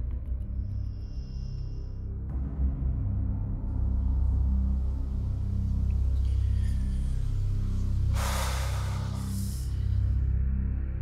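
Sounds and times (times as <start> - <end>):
suspenseful music with low drone: 0.0 - 11.0
breathy rush of noise: 6.2 - 10.3.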